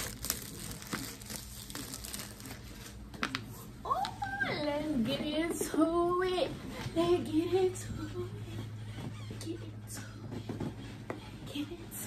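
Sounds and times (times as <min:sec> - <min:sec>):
plastic wrapping crinkling: 0:00.0 - 0:03.4.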